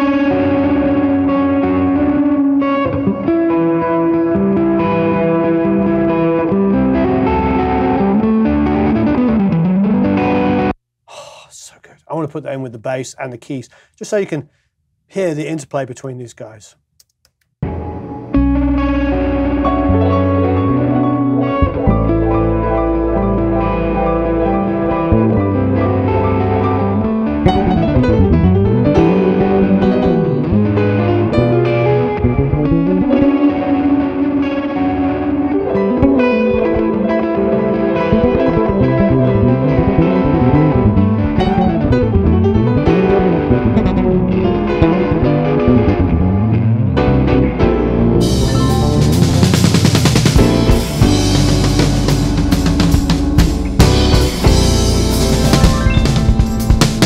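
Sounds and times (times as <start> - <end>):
bass guitar: 0.0 - 10.8, 17.6 - 57.0
electric guitar: 0.0 - 10.8, 17.6 - 57.0.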